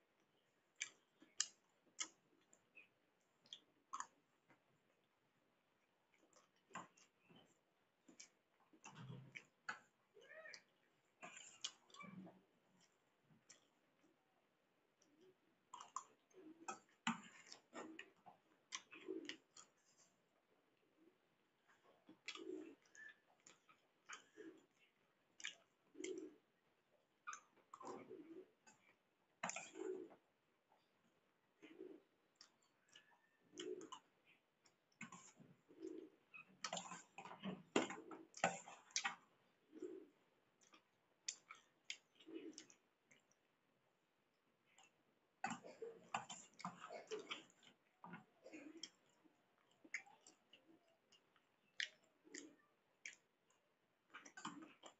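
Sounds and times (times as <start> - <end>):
chewing: 0.2 - 5.0, 5.8 - 43.6, 44.4 - 54.9.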